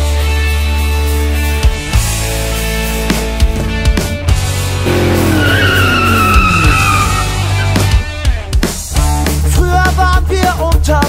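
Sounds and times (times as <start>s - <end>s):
rock music with singing: 0.0s - 11.0s
wavering high squealing tone: 4.9s - 7.4s.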